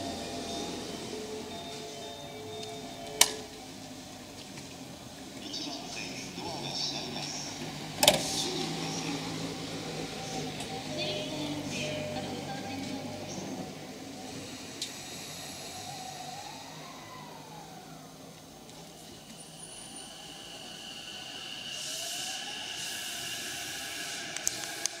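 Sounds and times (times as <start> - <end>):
electric train motor whining: 0.0 - 5.3, 7.4 - 25.0
air hiss: 19.3 - 25.0.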